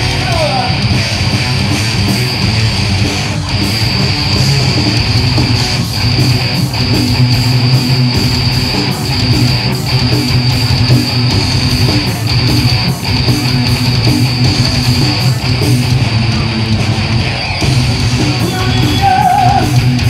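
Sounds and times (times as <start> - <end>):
bass guitar: 0.0 - 20.0
drums: 0.0 - 20.0
electric guitars: 0.0 - 20.0.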